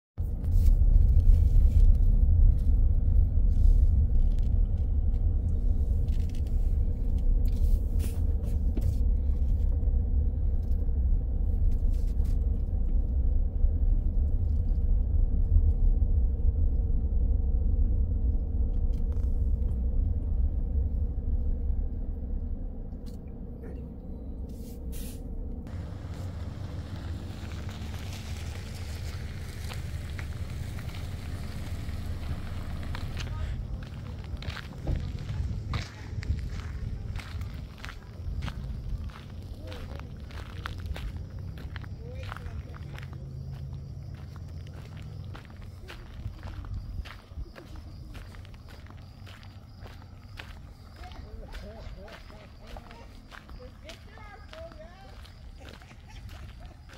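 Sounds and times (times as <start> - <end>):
car rolling on gravel: 0.2 - 22.1, 25.6 - 56.9
footsteps on gravel: 25.7 - 56.9.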